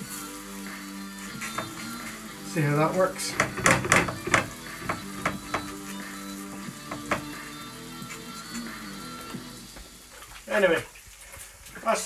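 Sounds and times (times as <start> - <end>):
background music: 0.0 - 10.2
dough sizzling in hot oil: 0.0 - 12.0
oil spitting crackles: 0.0 - 12.0.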